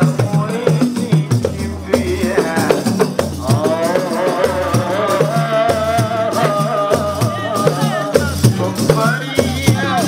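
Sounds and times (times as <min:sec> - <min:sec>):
frame drums beaten: 0:00.0 - 0:10.0
person singing: 0:00.0 - 0:10.0.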